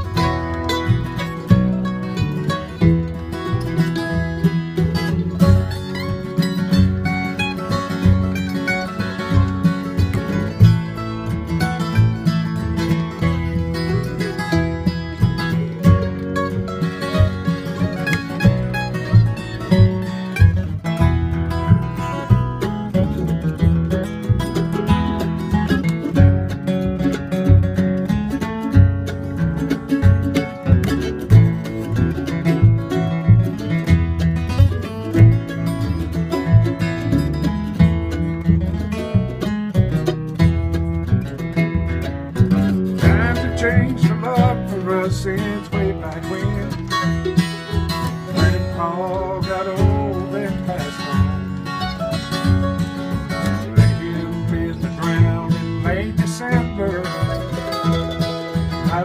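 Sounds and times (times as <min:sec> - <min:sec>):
acoustic guitar strumming and picking: 0:00.0 - 0:59.0
mandolin: 0:00.0 - 0:59.0
plucked upright bass: 0:00.0 - 0:59.0.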